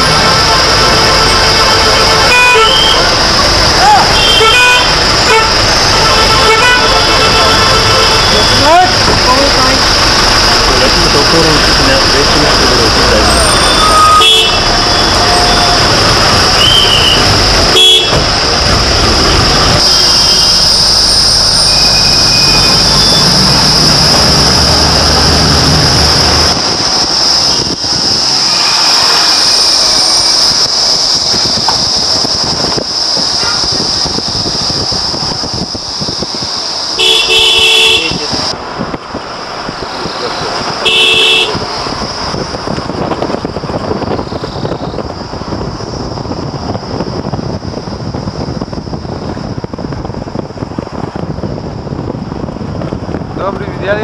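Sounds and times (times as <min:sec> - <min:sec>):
vehicle horn toots: 0:00.0 - 0:03.2, 0:03.9 - 0:09.0, 0:13.2 - 0:18.3, 0:19.8 - 0:20.9, 0:37.0 - 0:38.4, 0:40.8 - 0:41.7
vehicle engine and road noise: 0:00.0 - 0:54.0.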